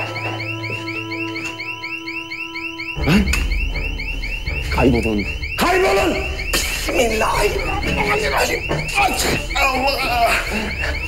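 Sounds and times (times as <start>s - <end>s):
security alarm warbling: 0.0s - 11.0s.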